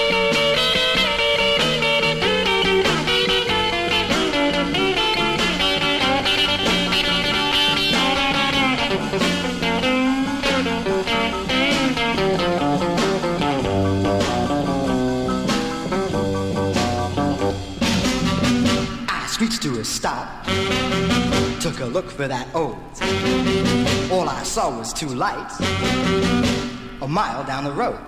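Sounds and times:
rock and roll record: 0:00.0 - 0:28.0.

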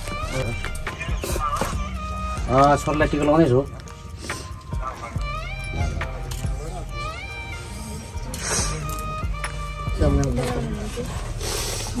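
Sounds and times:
background music melody: 0:00.0 - 0:12.0.

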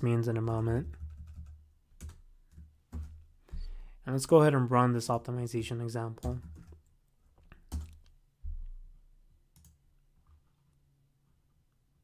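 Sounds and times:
keyboard keystrokes: 0:07.6 - 0:08.2.

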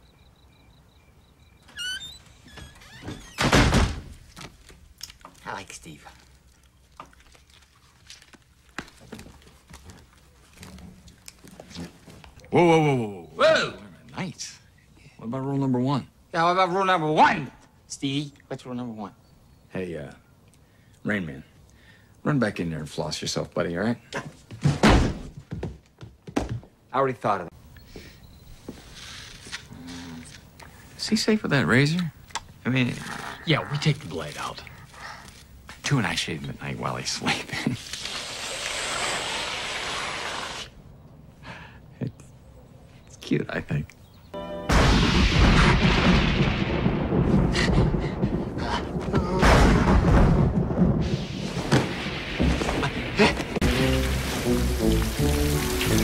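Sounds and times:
door hinges squeaking: 0:01.6 - 0:04.2
door shutting with thud: 0:01.7 - 0:04.2, 0:24.6 - 0:25.3
heavy thunk: 0:24.6 - 0:26.6.

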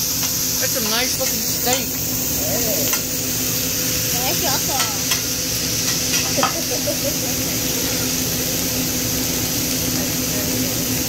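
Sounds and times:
steak sizzling on a griddle: 0:00.0 - 0:11.0.

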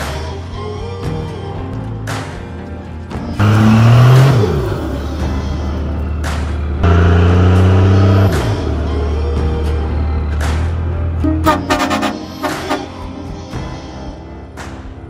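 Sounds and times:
background music with a beat: 0:00.0 - 0:15.0
diesel engine revving hard: 0:03.4 - 0:12.9.

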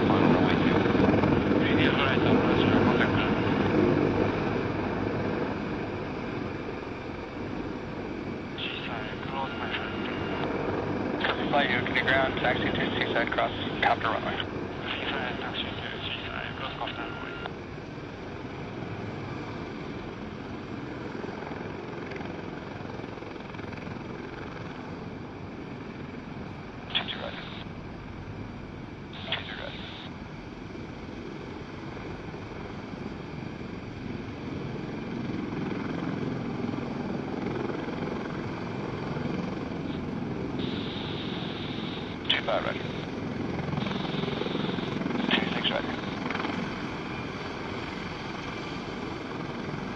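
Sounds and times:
radio chatter: 0:00.0 - 0:03.7, 0:08.6 - 0:10.6, 0:11.2 - 0:17.6, 0:26.8 - 0:27.7, 0:29.2 - 0:30.2, 0:39.8 - 0:46.4
helicopter engines and rotor: 0:00.0 - 0:49.9
short radio bursts: 0:11.2 - 0:17.5, 0:26.9 - 0:27.7, 0:29.2 - 0:30.1, 0:40.6 - 0:43.1, 0:43.8 - 0:46.2.

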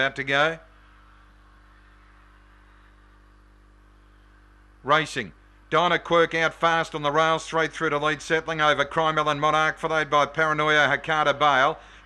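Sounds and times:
commentator speaking: 0:00.0 - 0:00.6, 0:04.8 - 0:11.8
faint electrical hum: 0:00.0 - 0:12.0.

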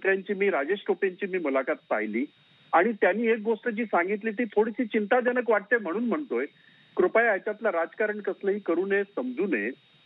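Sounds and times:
man speaking over phone line: 0:00.0 - 0:09.7.

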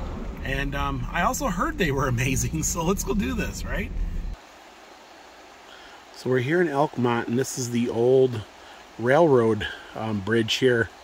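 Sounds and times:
river flowing over rocks: 0:04.3 - 0:11.0.

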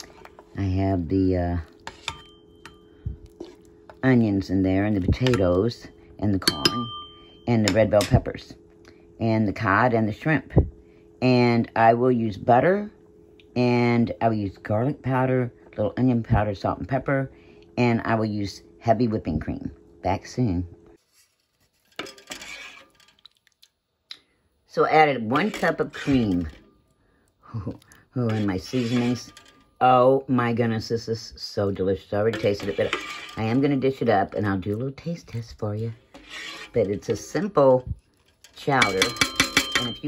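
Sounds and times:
wooden spoon stirring in pot: 0:00.0 - 0:06.8, 0:21.0 - 0:23.3, 0:25.0 - 0:26.6, 0:28.2 - 0:29.6, 0:32.0 - 0:40.0
faint steady hum: 0:00.0 - 0:40.0
spoon knocking pot: 0:06.4 - 0:08.2, 0:38.7 - 0:40.0.

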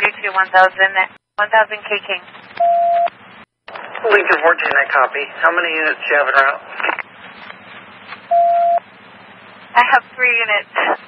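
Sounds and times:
electronic radio beep: 0:02.6 - 0:03.1, 0:08.3 - 0:08.8
radio hiss: 0:03.7 - 0:08.3, 0:09.8 - 0:11.0.

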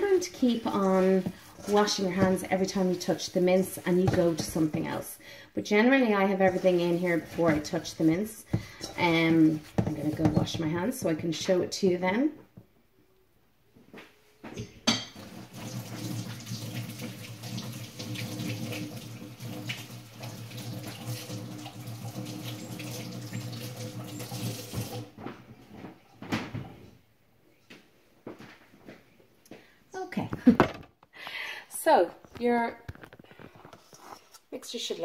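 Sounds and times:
hands washing under water: 0:00.0 - 0:05.1.

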